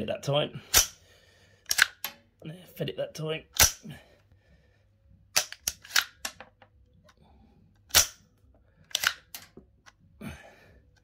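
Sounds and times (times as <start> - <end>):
rifle action metallic clicks: 1.7 - 2.2, 3.6 - 3.8, 5.4 - 6.4, 7.9 - 8.2, 8.9 - 9.6.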